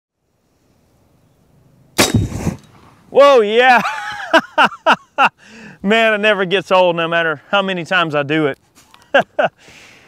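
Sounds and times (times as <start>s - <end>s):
faint outdoor background: 0.1s - 10.0s
air rifle firing: 2.0s - 3.1s.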